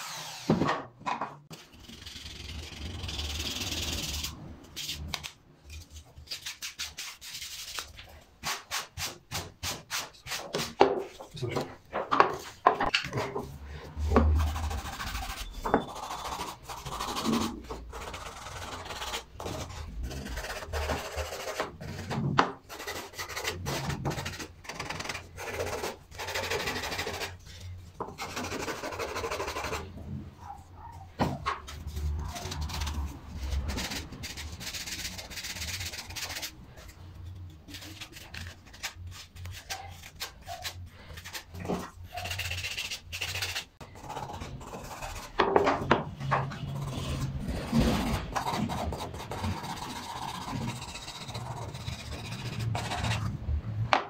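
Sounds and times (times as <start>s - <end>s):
sanding stick rasping on wood: 28.2s - 29.9s, 48.0s - 53.2s.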